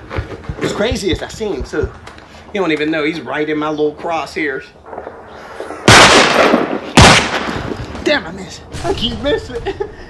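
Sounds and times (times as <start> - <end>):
rifle shots echoing: 4.8 - 8.0.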